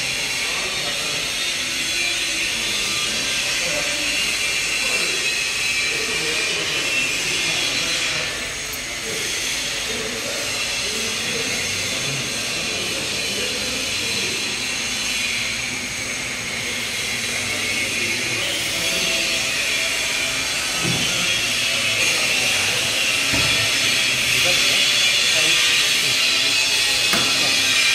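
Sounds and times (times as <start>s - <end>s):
faint indistinct voices: 0.0s - 27.9s.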